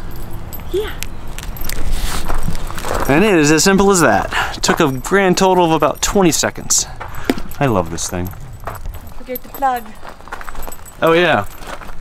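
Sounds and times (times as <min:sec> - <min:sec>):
metallic jingling and clinking: 0:00.0 - 0:12.0
footsteps crunching on gravel: 0:01.3 - 0:12.0.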